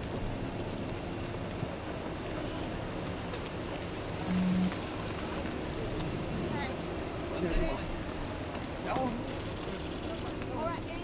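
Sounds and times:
traffic: 0.0 - 11.0
short low tone: 4.3 - 4.8.

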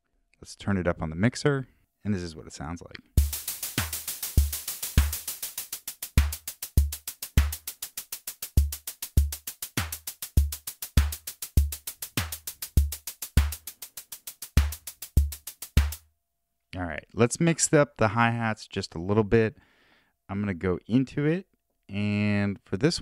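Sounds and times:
hi-hat ticks: 3.2 - 16.0
kick and snare drum pattern: 3.2 - 16.0.

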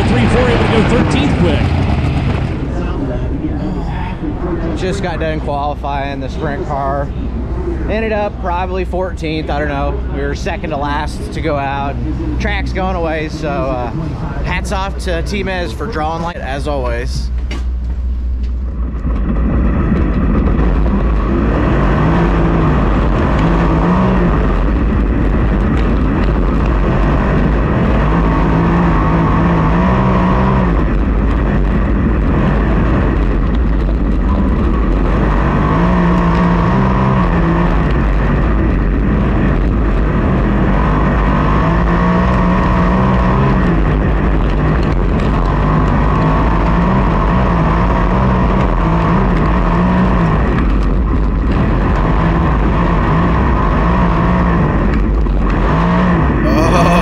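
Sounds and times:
race car engine running hard: 0.0 - 57.0.

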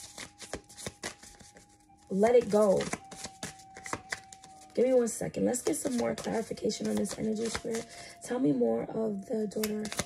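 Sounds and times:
cards being shuffled: 0.0 - 1.8, 2.4 - 4.8, 5.6 - 8.0, 9.6 - 10.0.

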